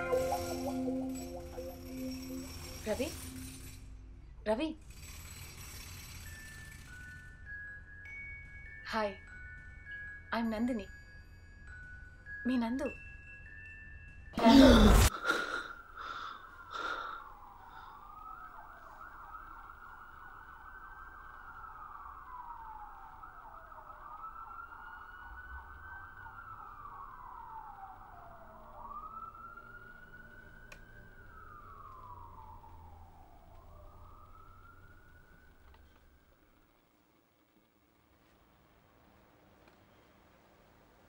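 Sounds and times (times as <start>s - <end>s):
police siren wailing: 0.0s - 3.8s, 15.9s - 36.2s.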